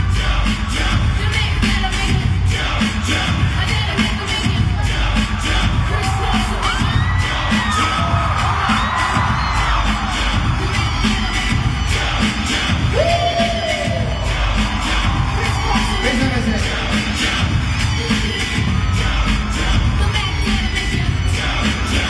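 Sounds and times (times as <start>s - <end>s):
fans screaming: 0.0s - 22.0s
loud pop music over sound system: 0.0s - 22.0s.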